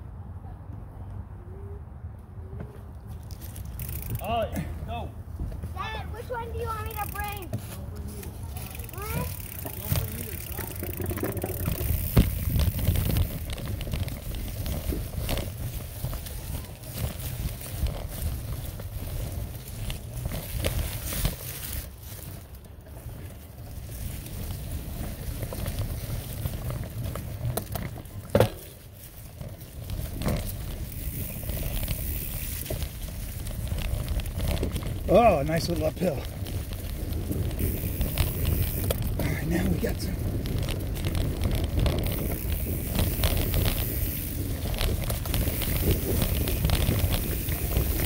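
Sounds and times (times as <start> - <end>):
bike knocking and rattling: 2.5 - 48.0
bike tyres rolling over leaves: 2.6 - 48.0
wind on microphone: 36.3 - 48.0.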